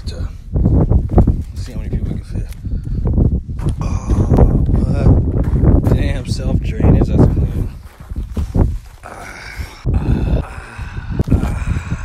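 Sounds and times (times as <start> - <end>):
person's drawn-out vocal sound: 3.8 - 4.9, 9.0 - 12.0.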